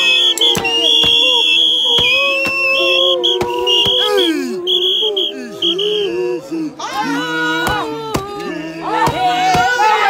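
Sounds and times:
shrill sustained whistle: 0.0 - 6.2
group of people singing: 7.6 - 10.0.

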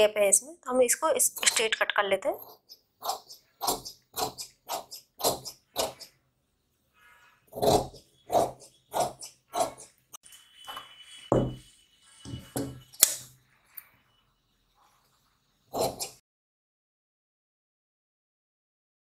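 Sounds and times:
shears snipping fabric: 2.4 - 6.1, 7.6 - 9.9, 15.8 - 16.2.

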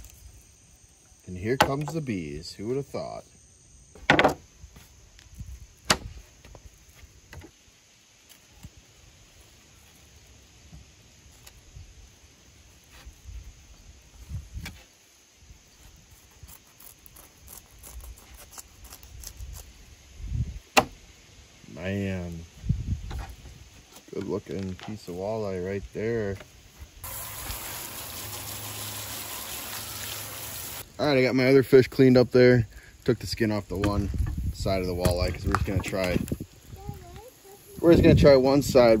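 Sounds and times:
insects chirring: 0.0 - 39.0.

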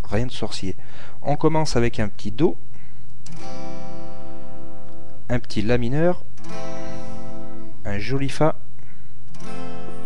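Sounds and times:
acoustic guitar chord ringing: 3.3 - 5.2, 6.4 - 8.1, 9.3 - 10.0.

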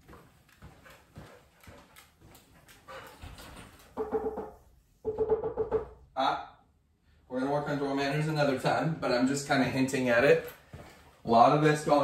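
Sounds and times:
footsteps on tile floor: 0.0 - 4.6, 10.4 - 11.3.

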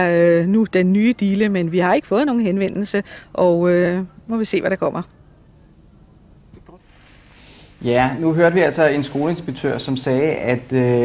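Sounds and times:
low rumble with faint hiss: 0.0 - 11.0.

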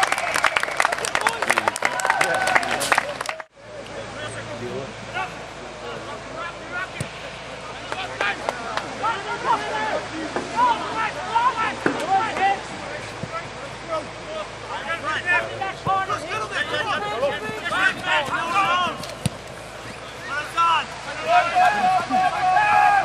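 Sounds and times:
men shouting and calling: 3.8 - 23.0.

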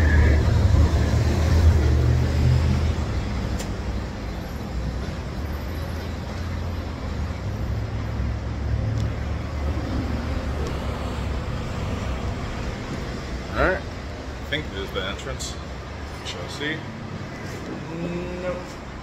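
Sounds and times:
passing motor vehicles rumble: 0.0 - 19.0
street noise: 0.0 - 19.0.

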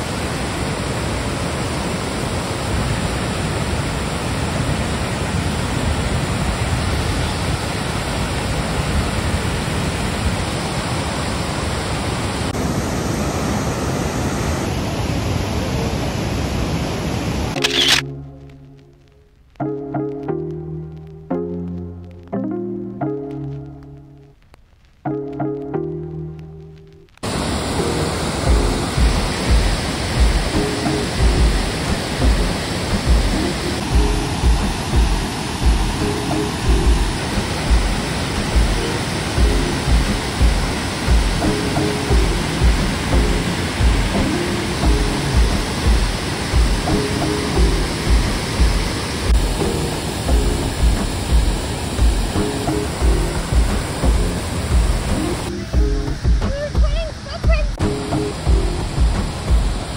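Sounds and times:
waterfall rushing: 0.0 - 18.3, 27.2 - 59.9
background music with beat: 18.0 - 24.4, 25.1 - 27.1, 27.8 - 59.9.

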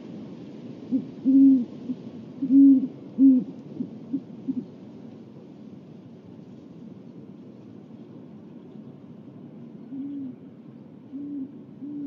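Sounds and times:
owl hooting: 11.1 - 12.0.

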